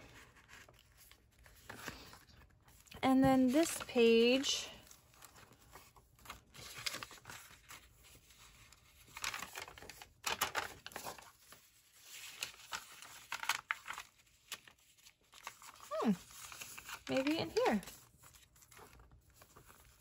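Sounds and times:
paper rustling and crinkling: 0:00.0 - 0:20.0.

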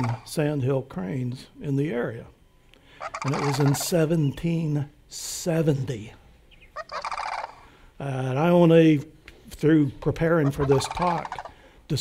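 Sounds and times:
cranes calling rolling rattle: 0:00.0 - 0:00.4, 0:03.0 - 0:04.1, 0:06.6 - 0:07.8, 0:10.4 - 0:11.8.

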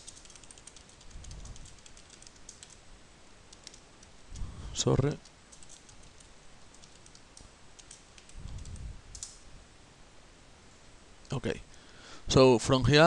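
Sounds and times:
computer keyboard keystrokes: 0:00.0 - 0:02.8, 0:03.5 - 0:04.1, 0:05.2 - 0:09.4.

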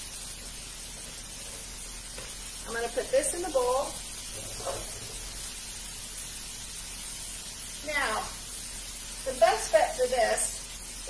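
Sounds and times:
vegetables hissing in a pan: 0:00.0 - 0:11.0.

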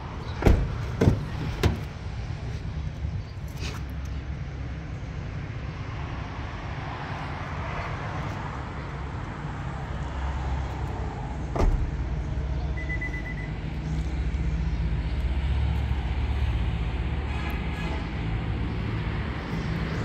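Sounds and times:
car door shutting: 0:00.4 - 0:01.9, 0:11.5 - 0:12.0.

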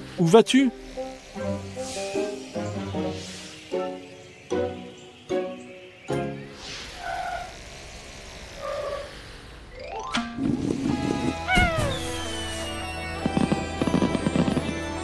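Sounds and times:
cartoon background music: 0:00.0 - 0:06.6, 0:09.8 - 0:15.0
fireworks crackling and bursting: 0:10.5 - 0:15.0
cartoon cannon firing: 0:11.5 - 0:12.7.

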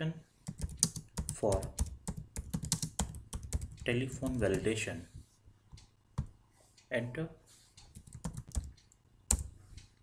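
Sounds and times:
keyboard typing: 0:00.5 - 0:04.8, 0:07.8 - 0:09.6.

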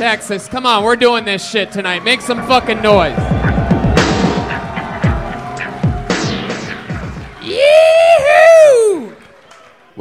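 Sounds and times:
audience cheering and clapping: 0:00.0 - 0:10.0
live band playing loud music: 0:03.0 - 0:07.4
loud drawn-out yell: 0:07.4 - 0:09.2.

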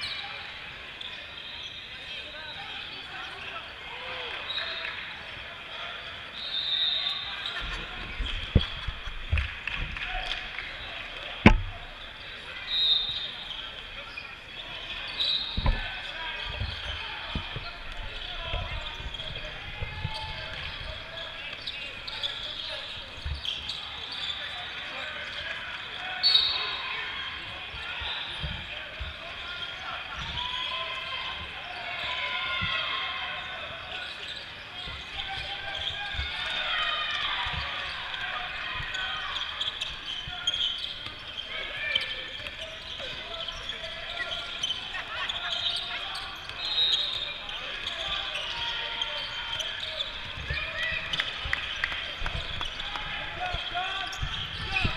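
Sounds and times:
chatter of players and spectators: 0:00.0 - 0:54.9.

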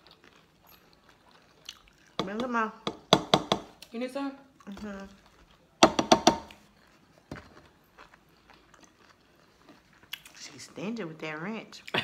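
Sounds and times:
faint eating sounds: 0:00.0 - 0:12.0.

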